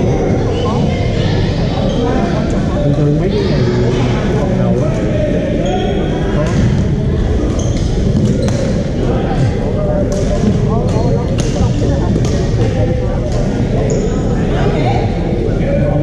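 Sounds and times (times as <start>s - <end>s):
babble of voices echoing: 0.0s - 16.0s.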